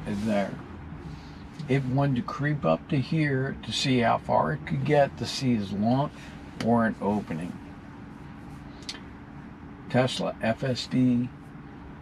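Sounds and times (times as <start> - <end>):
man speaking: 0.0 - 0.6, 1.6 - 7.6, 9.9 - 11.3
car cabin low hum: 0.0 - 12.0.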